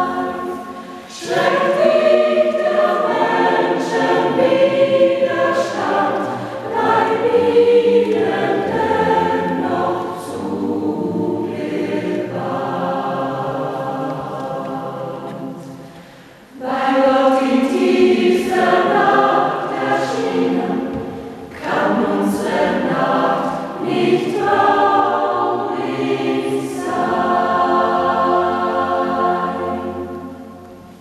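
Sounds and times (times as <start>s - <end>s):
choir singing a hymn a cappella: 0.0s - 31.0s.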